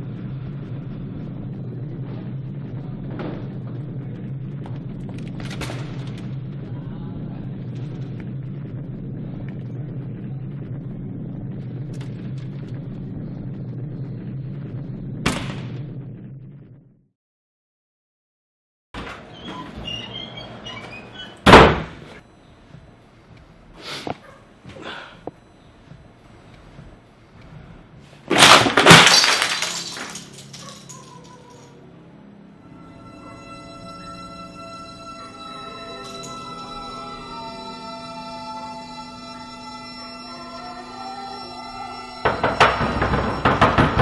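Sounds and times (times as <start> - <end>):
low rumbling drone: 0.0 - 17.1, 29.8 - 44.0
crash of something breaking: 28.3 - 31.5.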